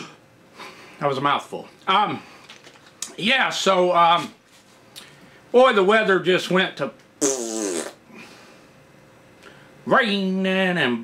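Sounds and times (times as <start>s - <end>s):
man blowing a raspberry: 7.2s - 8.3s.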